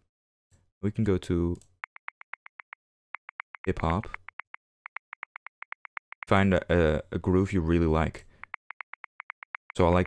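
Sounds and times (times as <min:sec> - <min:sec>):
rapid light ticks: 0:01.6 - 0:06.4, 0:08.4 - 0:09.9.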